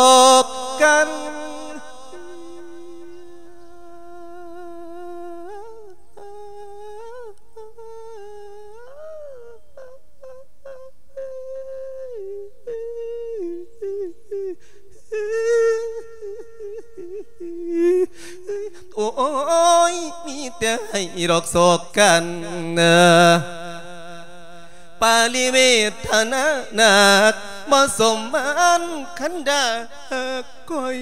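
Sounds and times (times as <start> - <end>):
monk chanting amplified: 0.0 - 31.0.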